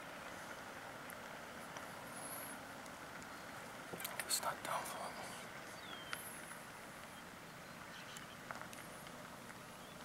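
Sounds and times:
faint outdoor background noise: 0.0 - 10.0
faint high chirp: 5.6 - 6.4, 7.1 - 8.4.

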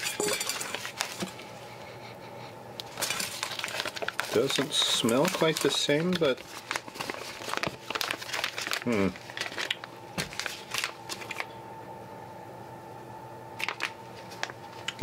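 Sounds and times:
plastic packaging crinkling: 0.0 - 1.4, 2.8 - 11.5, 13.6 - 15.0.

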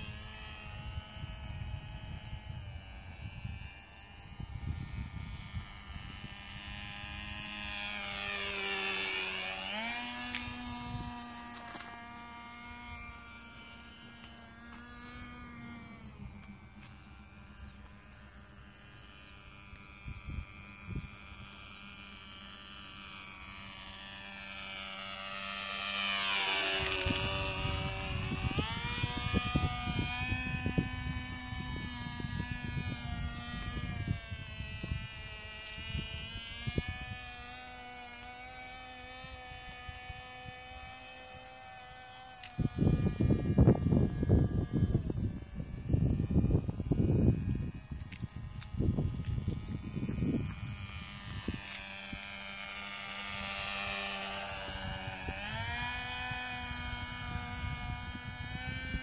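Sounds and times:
model airplane engine buzzing: 0.0 - 59.0.

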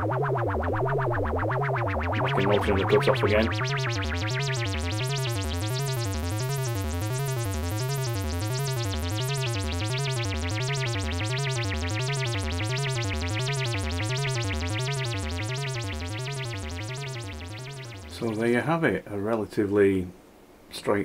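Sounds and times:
buzzy wavering synth tone: 0.0 - 18.6.

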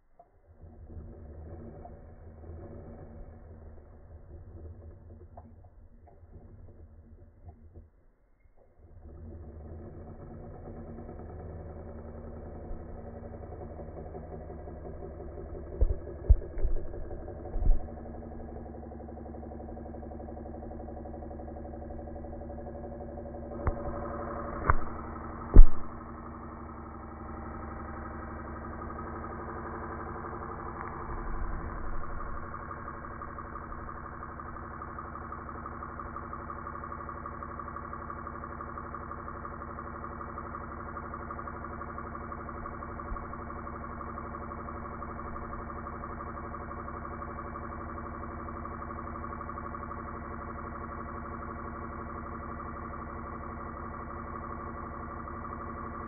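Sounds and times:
knocks or bumps: 23.7 - 26.1.

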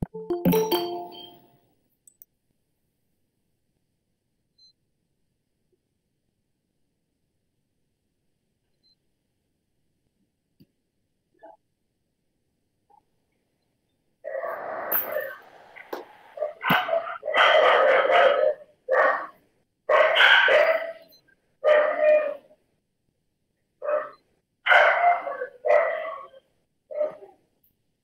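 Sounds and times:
dog barking: 16.4 - 22.5, 23.8 - 27.4.

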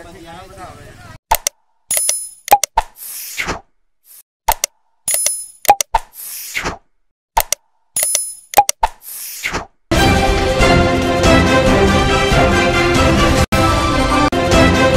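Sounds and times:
clicks and pops: 1.3 - 3.7, 4.4 - 9.7.

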